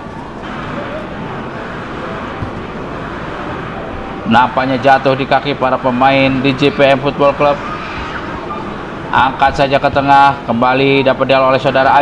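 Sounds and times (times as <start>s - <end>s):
outdoor hiss and rumble: 0.0s - 12.0s.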